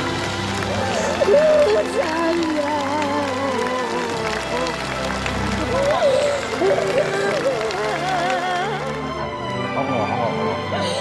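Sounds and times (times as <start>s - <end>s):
soft background music: 0.0s - 11.0s
woman crying and sobbing: 0.7s - 4.8s, 5.6s - 9.1s.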